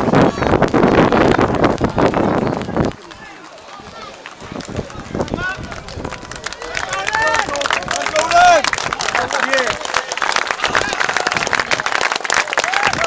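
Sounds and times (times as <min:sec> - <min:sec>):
football crowd roar: 0:00.0 - 0:13.0
scattered voices and shouts: 0:02.3 - 0:09.9.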